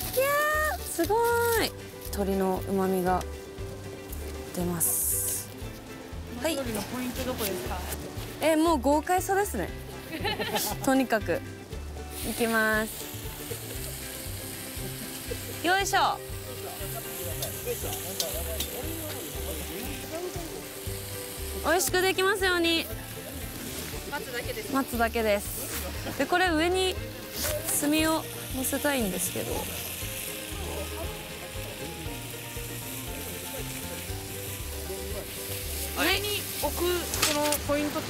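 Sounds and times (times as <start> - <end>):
coals laid on metal lid: 0.0 - 8.6, 9.2 - 38.0
fire popping: 0.0 - 38.0
soft background music: 0.0 - 38.0
wood fire crackling: 0.0 - 38.0.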